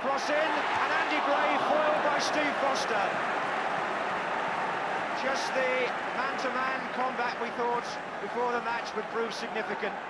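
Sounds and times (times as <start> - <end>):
large football crowd: 0.0 - 10.0.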